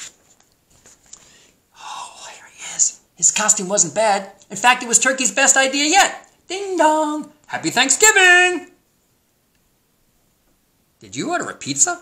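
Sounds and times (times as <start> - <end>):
person whispering: 1.7 - 3.6.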